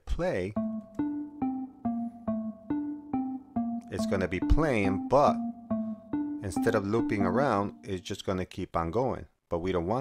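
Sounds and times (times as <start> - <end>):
xylophone melody: 0.5 - 8.0.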